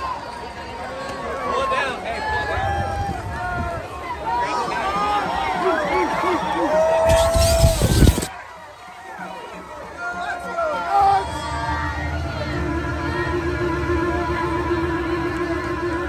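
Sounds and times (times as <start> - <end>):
crowd chattering and calling out: 0.0 - 16.0
loud rush of noise: 1.7 - 16.0.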